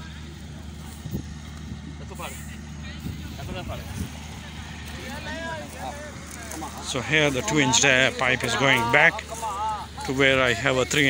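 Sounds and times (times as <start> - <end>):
distant voices talking: 0.0 - 11.0
steady low hum: 0.0 - 11.0.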